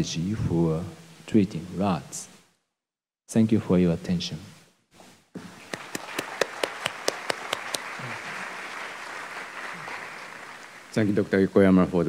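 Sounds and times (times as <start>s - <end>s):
loud separate claps: 5.6s - 11.0s
audience applauding: 5.6s - 11.4s.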